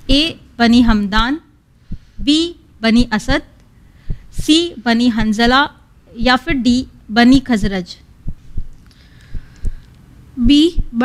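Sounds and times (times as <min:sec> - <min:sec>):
low heartbeat-like thumps: 0:00.8 - 0:05.6, 0:07.3 - 0:09.8, 0:10.4 - 0:11.0.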